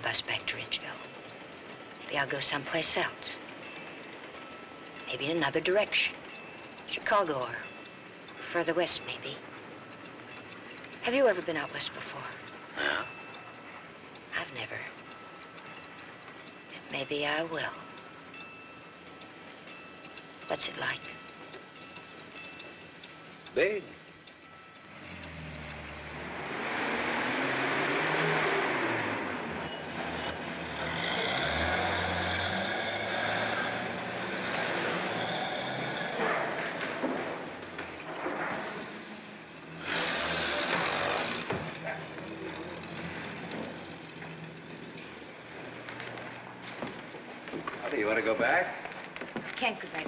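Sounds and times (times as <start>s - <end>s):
engine rumble: 0.0s - 50.0s
road noise: 0.0s - 50.0s.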